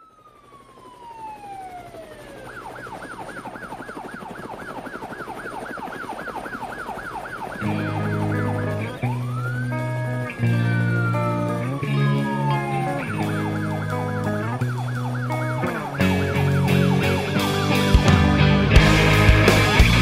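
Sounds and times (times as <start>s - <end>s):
siren wailing and yelping: 0.0s - 18.1s
electric guitar chords: 7.6s - 20.0s.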